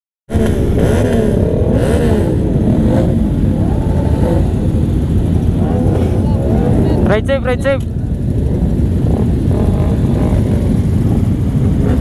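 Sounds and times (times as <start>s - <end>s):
motorcycle engines revving: 0.3s - 12.0s
motorcycle engines rumbling: 0.3s - 12.0s.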